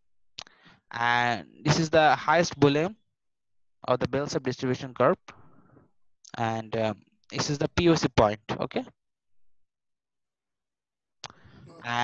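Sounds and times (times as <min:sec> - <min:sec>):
faint breath: 0:00.4 - 0:00.9, 0:05.3 - 0:06.0, 0:11.3 - 0:11.8
man speaking: 0:00.9 - 0:03.0, 0:03.8 - 0:05.3, 0:06.3 - 0:08.9, 0:11.7 - 0:12.0.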